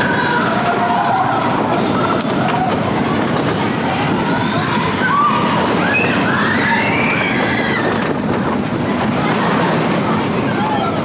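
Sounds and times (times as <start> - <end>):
roller coaster on steel track: 0.0 - 11.0.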